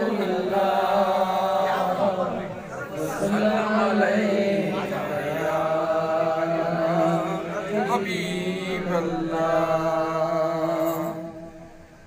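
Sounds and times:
man chanting into a microphone: 0.0 - 11.7.

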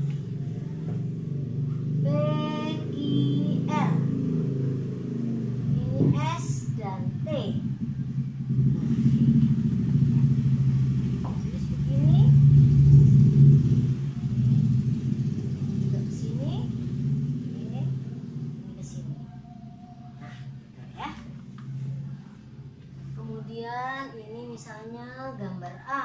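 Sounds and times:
motor engine running: 0.0 - 26.0.

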